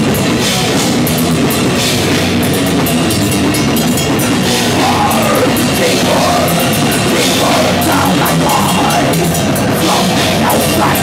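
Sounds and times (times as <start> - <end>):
heavy metal band playing: 0.0 - 11.0.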